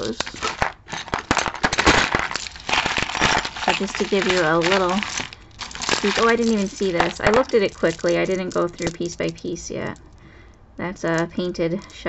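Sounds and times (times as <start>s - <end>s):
jewelry clinking and rattling: 0.0s - 10.2s.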